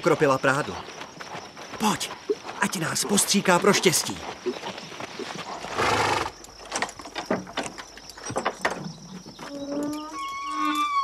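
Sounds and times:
drawn-out animal cries: 9.4s - 11.0s.

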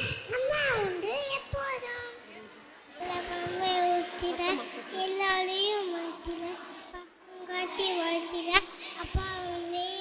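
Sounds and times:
child singing into a microphone: 0.0s - 2.2s, 3.0s - 10.0s.

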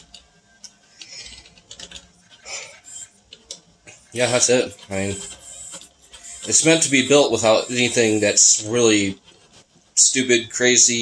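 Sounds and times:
printer ticks and clicks: 0.0s - 11.0s
stepper motor sound: 0.0s - 11.0s.

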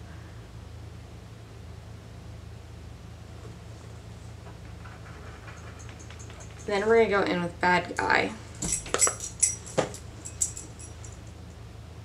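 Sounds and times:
low hum with faint hiss: 0.0s - 12.0s.

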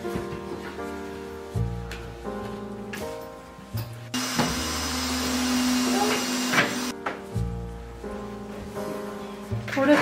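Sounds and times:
background music: 0.0s - 10.0s
small electric motor humming: 4.2s - 6.9s.

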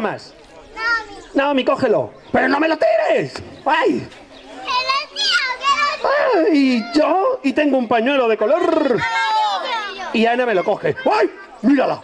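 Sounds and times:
children calling out excitedly: 0.5s - 1.5s, 4.2s - 7.5s, 8.5s - 12.0s.

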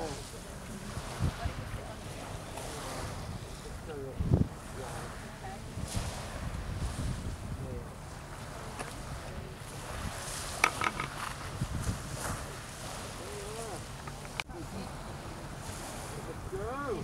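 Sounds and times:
wind buffeting microphone: 0.0s - 17.0s
faint voices: 12.2s - 17.0s.

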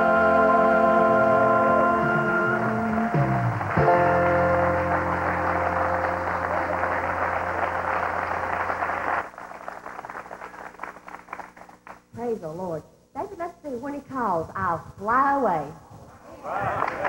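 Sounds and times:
gospel band holding chord: 0.0s - 9.2s
audience applause: 3.1s - 12.0s, 16.5s - 17.0s.

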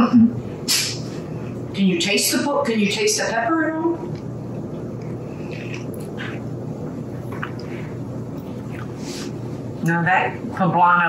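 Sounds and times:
low room hum: 0.0s - 11.0s
person chewing: 4.1s - 9.4s.

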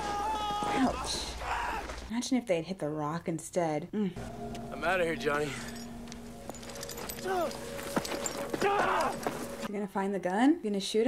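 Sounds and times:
shorter higher cry: 8.6s - 9.2s.

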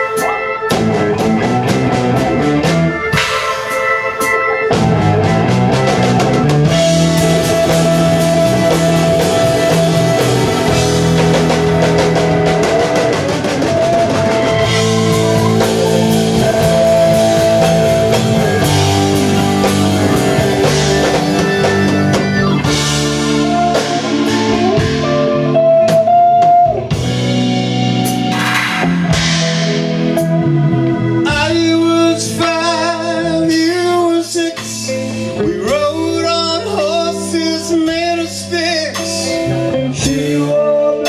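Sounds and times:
drum kit: 0.0s - 40.6s
bass guitar: 0.0s - 41.0s
electric guitar: 0.0s - 41.0s
rock band playing live: 0.0s - 41.0s.

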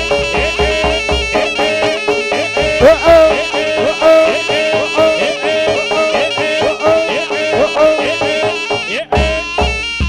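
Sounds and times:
drum strokes: 0.0s - 10.0s
reedy sliding melody: 0.0s - 10.0s.

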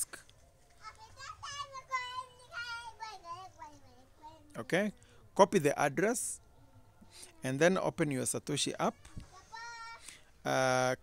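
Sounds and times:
faint young child's voice: 0.8s - 5.1s, 8.8s - 10.2s.

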